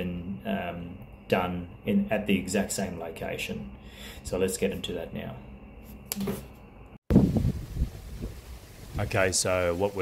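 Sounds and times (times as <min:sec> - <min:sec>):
wind buffeting microphone: 0:07.1 - 0:09.5.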